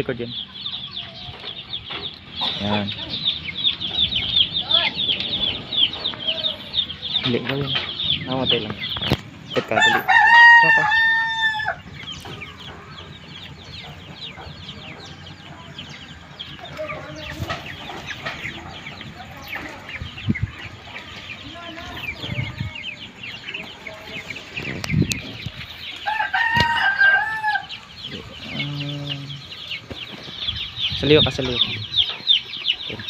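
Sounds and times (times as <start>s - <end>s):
chickens clucking: 0.0s - 33.0s
chicks peeping: 0.0s - 33.0s
rooster crowing: 9.7s - 13.0s, 26.0s - 29.6s.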